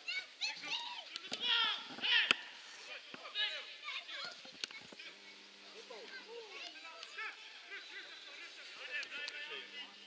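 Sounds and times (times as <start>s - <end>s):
players shouting calls: 0.0s - 4.4s.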